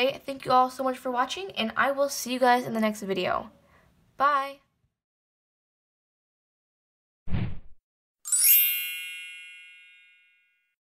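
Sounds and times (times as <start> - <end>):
bell-like chime: 8.3 - 10.8.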